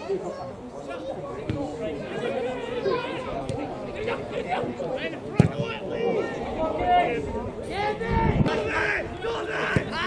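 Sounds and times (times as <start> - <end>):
football being kicked: 5.4 - 5.7.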